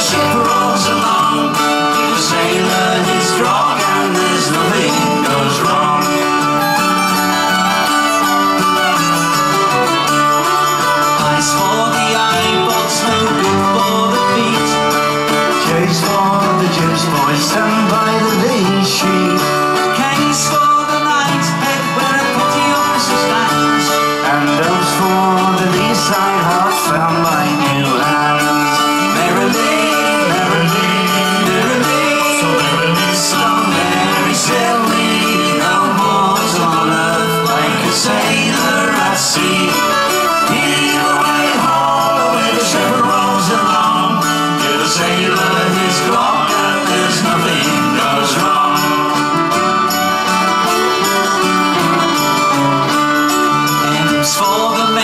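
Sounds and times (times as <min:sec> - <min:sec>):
drums: 0:00.0 - 0:55.0
strummed acoustic guitars: 0:00.0 - 0:55.0.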